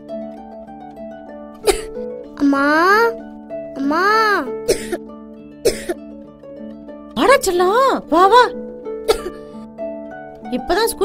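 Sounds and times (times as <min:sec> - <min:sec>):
plucked-string background music: 0:00.0 - 0:11.0.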